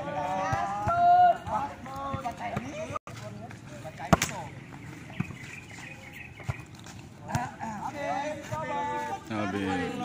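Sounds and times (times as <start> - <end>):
players shouting: 0.0 - 2.9.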